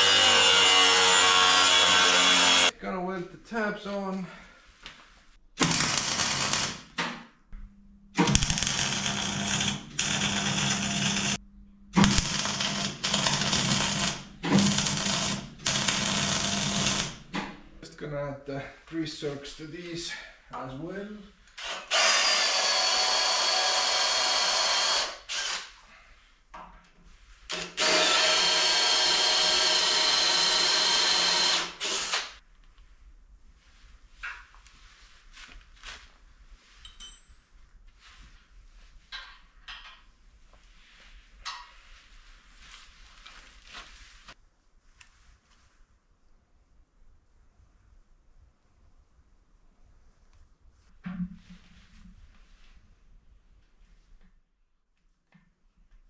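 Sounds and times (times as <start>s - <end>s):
cordless drill drilling into steel: 0.0s - 2.7s, 8.2s - 11.4s, 12.0s - 17.3s, 21.6s - 25.7s, 27.5s - 32.4s.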